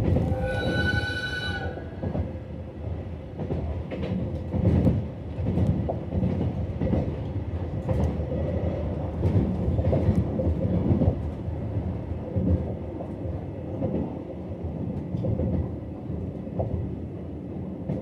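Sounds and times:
train wheels rumbling on rail: 0:00.0 - 0:18.0
high ringing tone: 0:00.3 - 0:01.8.

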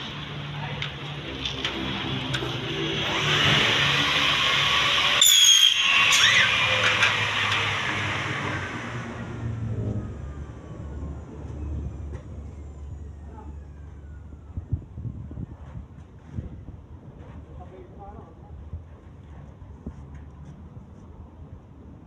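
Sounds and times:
saw blade whine spinning down: 0:01.2 - 0:14.7
saw blade screeching through metal: 0:03.0 - 0:08.8.

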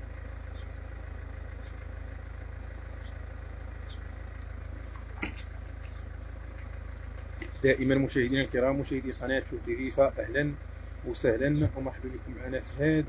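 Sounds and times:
vehicle engine idling: 0:00.0 - 0:13.0.

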